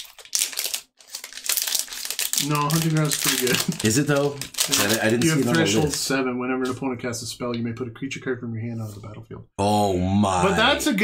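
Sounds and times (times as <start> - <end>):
foil wrapper crinkling: 0.0 - 6.1.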